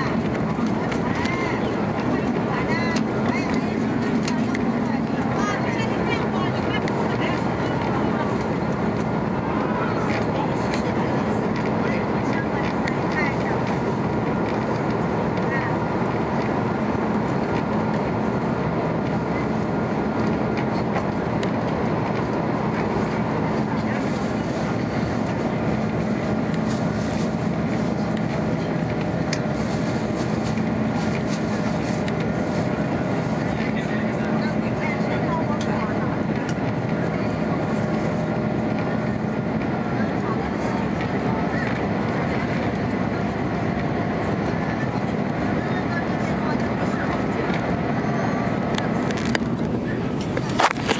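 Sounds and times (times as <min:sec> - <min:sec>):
airplane cabin engine drone: 0:00.0 - 0:50.9.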